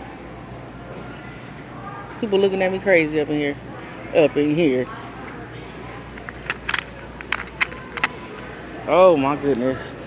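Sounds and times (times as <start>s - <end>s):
store background noise: 0.0s - 10.0s.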